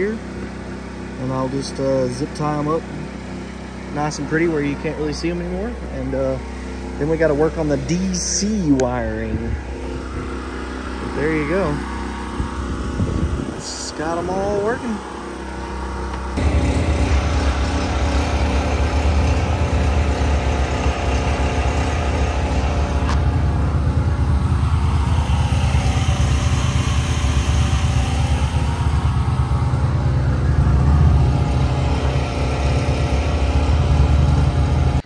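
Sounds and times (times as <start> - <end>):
generator engine running: 0.0 - 35.0.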